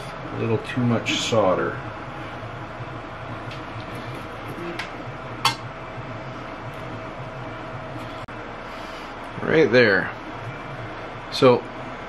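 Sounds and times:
steady low hum with hiss: 0:00.0 - 0:12.0.

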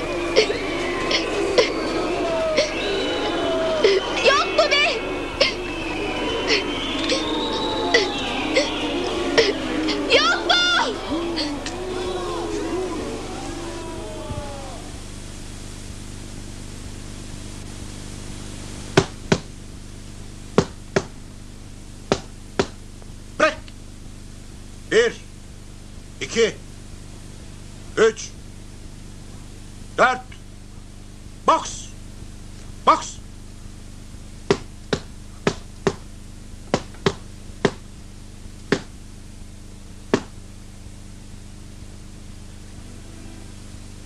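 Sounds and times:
steady low hum: 0:00.0 - 0:44.0
man shouting: 0:06.5 - 0:15.0, 0:23.4 - 0:23.6, 0:31.5 - 0:31.9, 0:32.9 - 0:33.2
boxing glove punches: 0:19.0 - 0:19.5, 0:20.6 - 0:21.2, 0:22.1 - 0:22.8, 0:34.5 - 0:36.1, 0:36.7 - 0:37.9, 0:38.7 - 0:39.0, 0:40.1 - 0:40.4.

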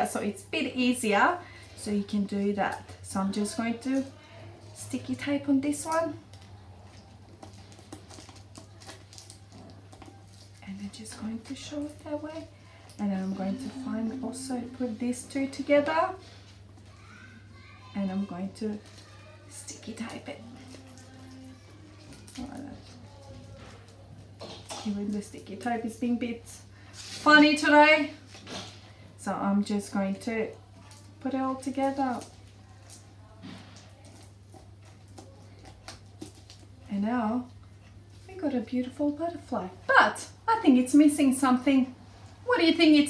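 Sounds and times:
low steady hum: 0:00.0 - 0:17.1
steady low hum: 0:10.5 - 0:16.8
faint child's voice: 0:16.8 - 0:24.2.

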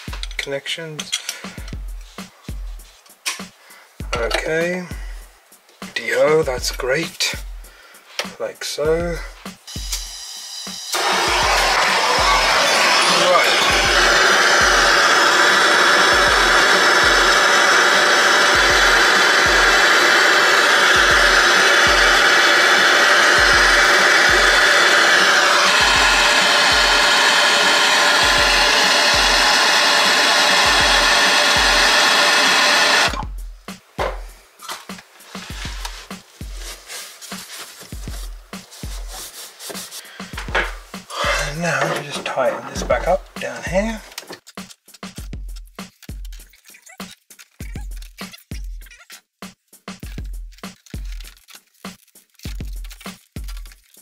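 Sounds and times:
blowtorch flame burning: 0:10.9 - 0:33.3.

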